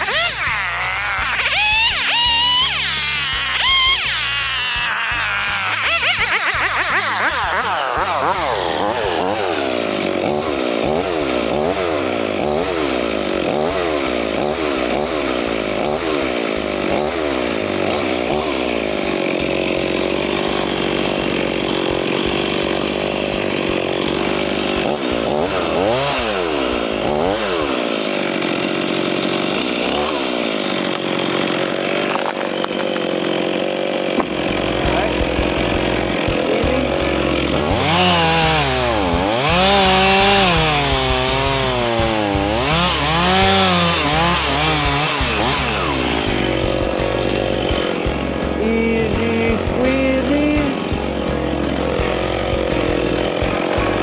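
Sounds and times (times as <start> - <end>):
chainsaw cutting wood: 0.0 - 54.0.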